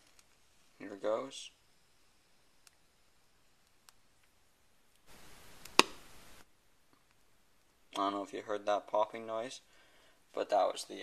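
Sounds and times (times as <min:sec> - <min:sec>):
soft noise: 0:00.0 - 0:08.4
hydrogen gas pop: 0:05.6 - 0:06.1.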